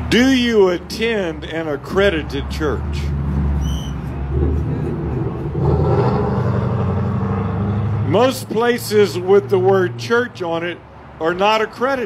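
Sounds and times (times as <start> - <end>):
road traffic noise: 0.0 - 12.0
vehicle engine running: 3.0 - 10.0.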